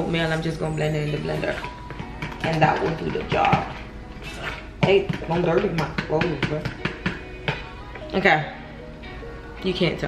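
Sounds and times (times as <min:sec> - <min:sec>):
metal spoon stirring batter: 0:00.0 - 0:08.1.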